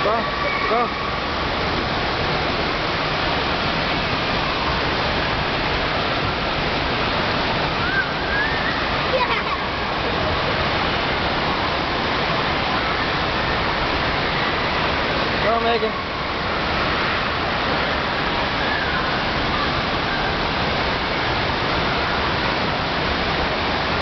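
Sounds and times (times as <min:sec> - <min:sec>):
water rushing down a slide: 0:00.0 - 0:24.0.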